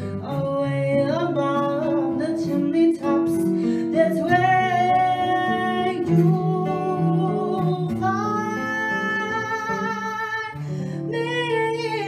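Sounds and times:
acoustic guitar: 0.0 - 12.0
woman singing long notes: 0.2 - 12.0.

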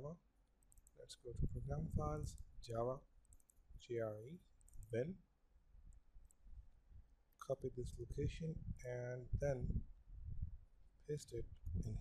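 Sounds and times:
computer mouse clicks: 0.6 - 1.0, 3.2 - 3.7, 4.6 - 4.9.

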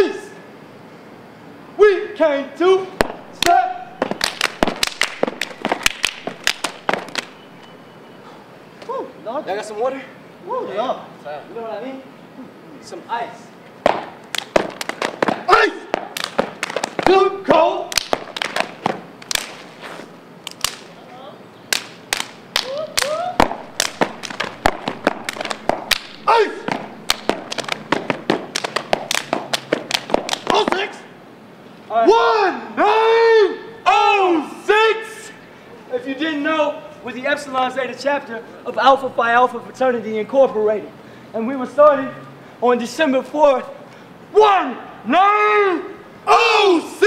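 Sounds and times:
foot stomps: 3.0 - 7.4, 13.8 - 17.3, 17.9 - 20.8, 22.1 - 31.0
hand claps and body slaps: 3.0 - 7.4, 13.8 - 17.3, 17.9 - 19.7, 20.4 - 20.9, 21.7 - 30.9
short rising shouted calls: 26.1 - 27.1.

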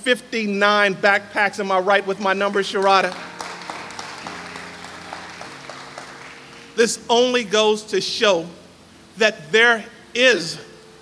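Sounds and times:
congregation applauding: 1.9 - 7.5.

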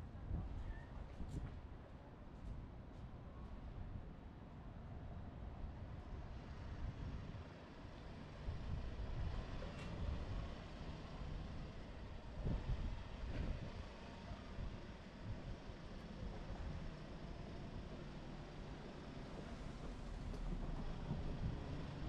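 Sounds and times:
wind rumble on microphone: 0.0 - 4.2, 6.2 - 7.5, 8.4 - 17.0, 20.0 - 22.0
passing traffic: 6.2 - 22.0.

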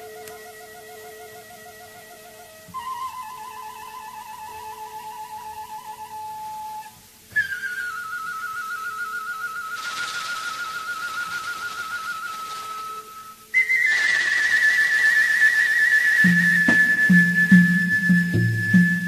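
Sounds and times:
flute-like wind instrument with vibrato: 0.0 - 19.0.

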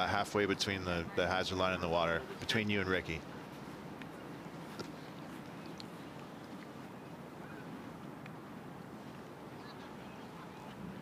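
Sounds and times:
low steady murmur: 0.0 - 11.0.

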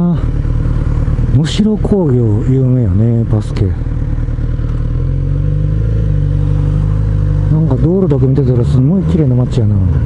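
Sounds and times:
motorcycle engine cruising: 0.0 - 10.0
man's voice: 1.3 - 3.8, 7.5 - 10.0.

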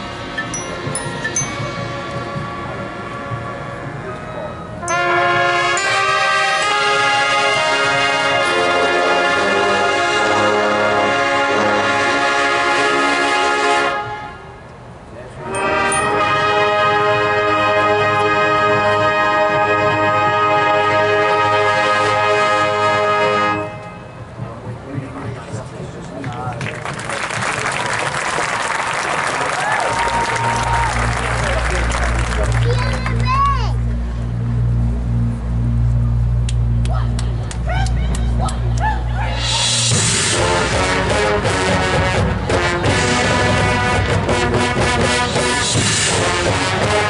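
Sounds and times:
marching band brass chords: 0.0 - 26.1, 26.8 - 47.0.

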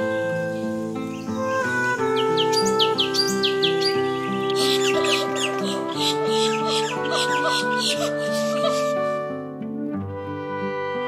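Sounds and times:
background music: 0.0 - 11.0
bird chirping and twittering: 0.3 - 8.9.

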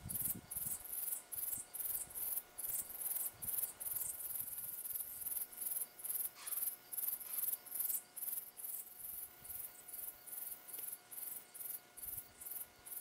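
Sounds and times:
insects chirping: 0.0 - 13.0.

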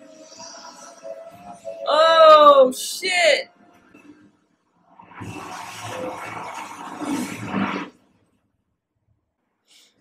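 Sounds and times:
loud rushing roar: 4.9 - 8.1.

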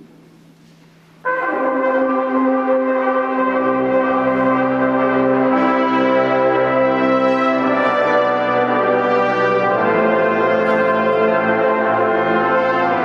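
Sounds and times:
brass band holding a chord: 1.2 - 13.0.

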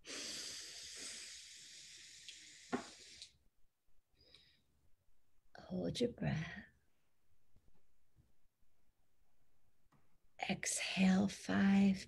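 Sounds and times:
slow inhale through nose: 0.0 - 3.3.

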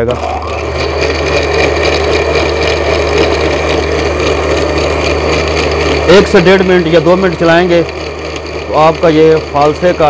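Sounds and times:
electric blender running: 0.0 - 10.0.

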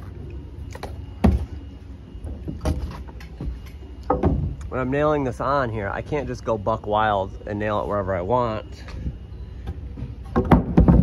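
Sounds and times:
sharp knocks and heavy thumps: 2.3 - 4.6, 10.0 - 11.0.

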